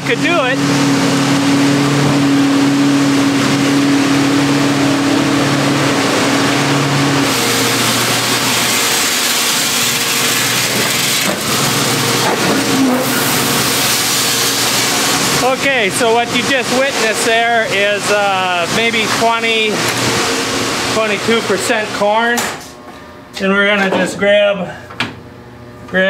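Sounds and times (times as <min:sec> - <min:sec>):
truck engine humming: 0:00.0 - 0:10.6
corn pouring through grate: 0:07.2 - 0:19.8.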